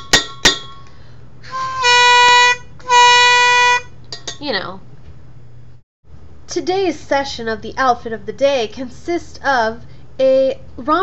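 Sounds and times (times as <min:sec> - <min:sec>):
imitated train horn blasts: 0:01.5 - 0:03.9.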